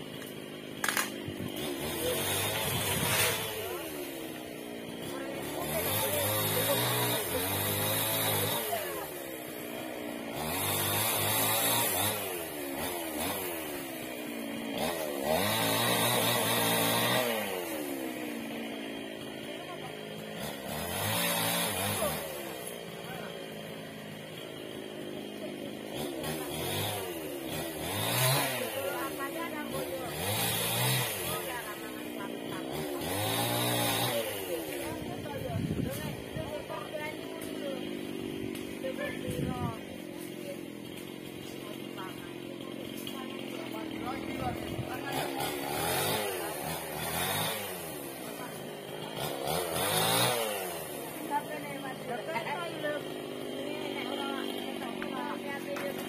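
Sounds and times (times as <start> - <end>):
chainsaw cutting wood: 0.0 - 56.0.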